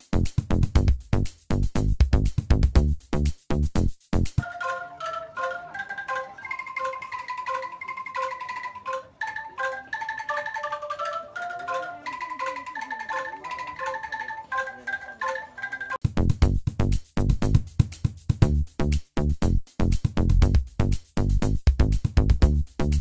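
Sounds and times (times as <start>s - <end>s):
angklung melody: 4.4s - 16.2s.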